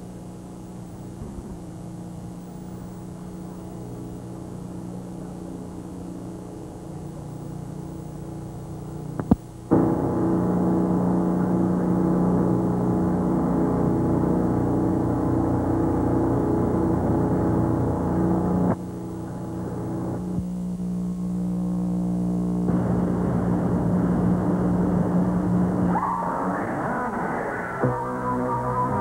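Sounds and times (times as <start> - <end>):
electrical buzz: 0.0 - 29.0
low hum: 0.0 - 29.0.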